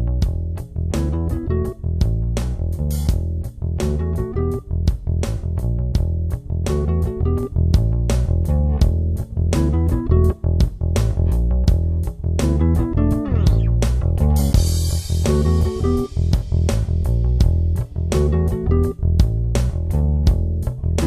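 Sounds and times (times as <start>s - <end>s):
music with bass and guitar: 0.0s - 21.0s.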